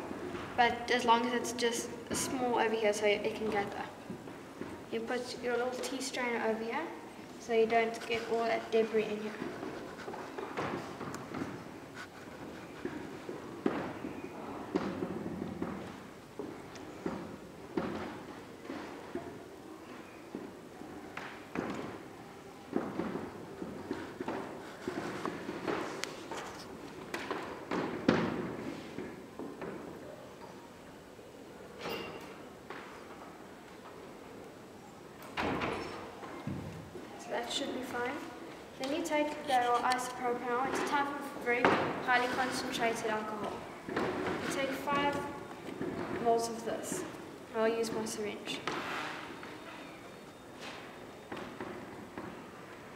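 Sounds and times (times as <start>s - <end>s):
knocks and thuds echoing: 12.8s - 16.0s, 27.2s - 29.9s.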